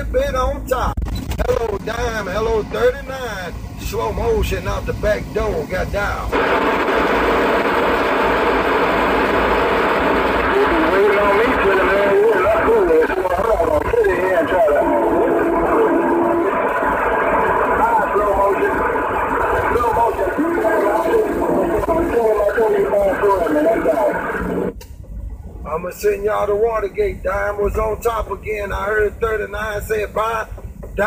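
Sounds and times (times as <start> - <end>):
garbled overlapping radio voices: 0.0 - 24.8, 25.4 - 31.0
radio static hiss: 0.0 - 24.8, 25.6 - 31.0
steady held tone: 0.0 - 28.1.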